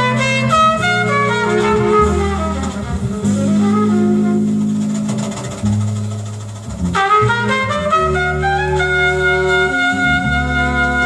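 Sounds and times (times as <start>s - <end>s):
live jazz with horns and bass: 0.0s - 11.0s.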